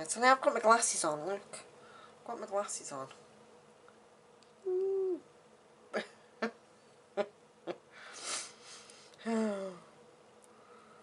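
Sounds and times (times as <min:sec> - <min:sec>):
woman humming: 0:04.6 - 0:05.3, 0:09.2 - 0:10.0.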